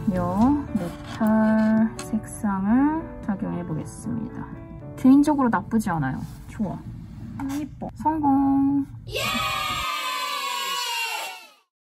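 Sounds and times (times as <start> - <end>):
high voice-like cry: 9.1 - 11.7.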